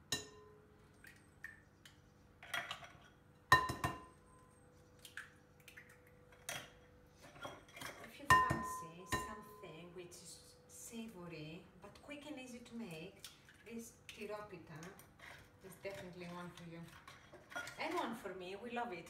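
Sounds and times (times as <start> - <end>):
eggs knocked against glass bowl: 3.5 - 4.1.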